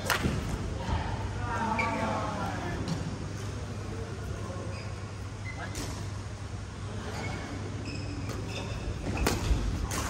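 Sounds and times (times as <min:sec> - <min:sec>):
low hum of sports hall: 0:00.0 - 0:10.0.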